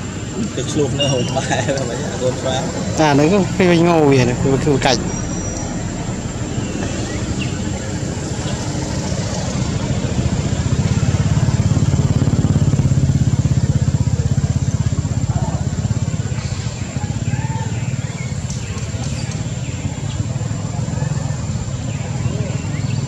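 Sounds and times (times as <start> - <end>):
engine running with low pulse: 0.0 - 23.0.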